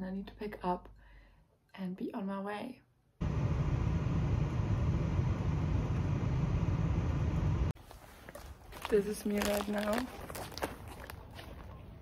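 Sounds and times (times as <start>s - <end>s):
vehicle rumbling: 3.2s - 7.8s.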